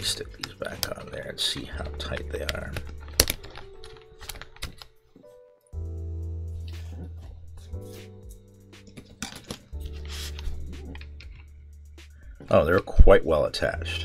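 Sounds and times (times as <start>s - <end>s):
soft background music: 0.0s - 14.0s.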